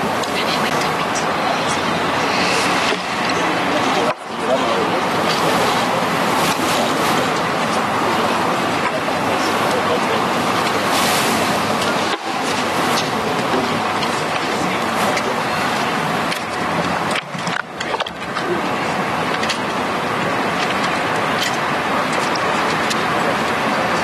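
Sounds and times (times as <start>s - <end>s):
crowd noise: 0.0s - 24.0s.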